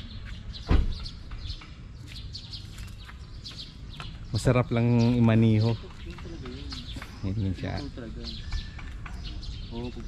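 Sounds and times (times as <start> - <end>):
small birds chirping: 0.0 - 10.0
brief loud low thud: 0.6 - 1.0.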